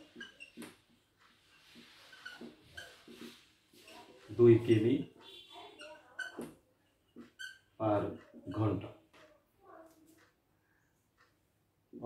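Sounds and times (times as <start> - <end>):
whiteboard marker squeaking: 0.0 - 8.9.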